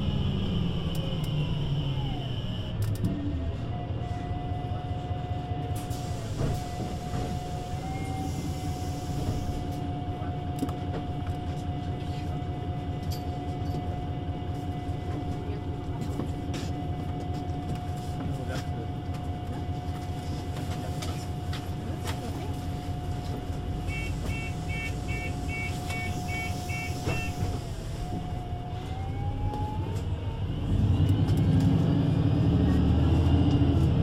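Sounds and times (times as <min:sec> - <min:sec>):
bus diesel engine droning: 0:00.0 - 0:34.0.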